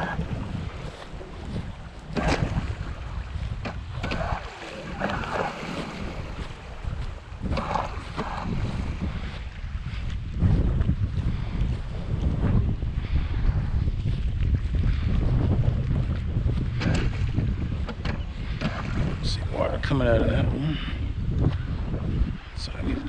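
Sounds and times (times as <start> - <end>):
model boat moving through water: 0.0 - 11.0
wind buffeting microphone: 0.0 - 23.0.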